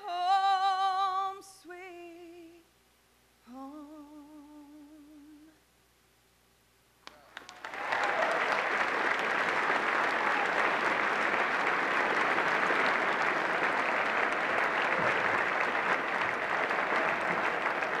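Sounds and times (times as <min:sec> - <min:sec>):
woman singing with vibrato: 0:00.0 - 0:02.7, 0:03.4 - 0:05.6
audience applause: 0:07.1 - 0:18.0.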